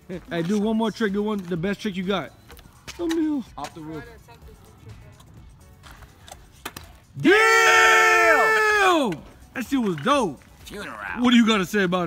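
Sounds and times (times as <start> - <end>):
scooter wheels rolling on asphalt: 0.0 - 7.1
faint music: 0.0 - 12.0.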